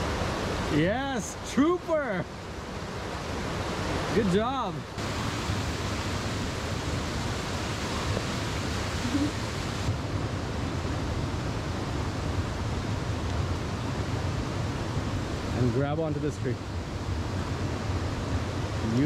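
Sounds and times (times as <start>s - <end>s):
creek rushing over rocks: 0.0s - 10.0s.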